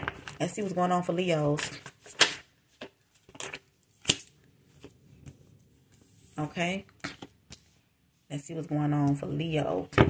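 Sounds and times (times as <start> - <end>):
tarot cards shuffling: 1.6 - 7.8
papery card slaps and flicks: 4.0 - 4.3.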